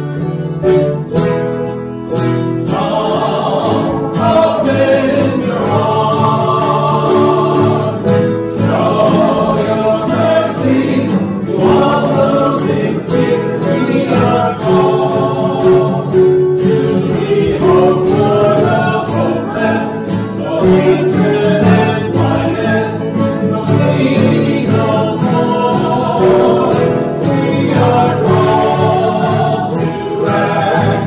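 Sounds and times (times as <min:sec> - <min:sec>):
instrumental accompaniment: 0:00.0 - 0:31.0
choir singing a hymn: 0:02.1 - 0:31.0.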